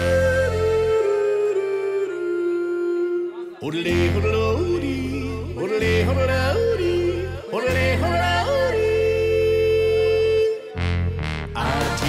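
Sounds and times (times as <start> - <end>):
man yodeling: 0.0 - 10.8
keyboard: 0.0 - 12.0
electric bass: 3.9 - 12.0.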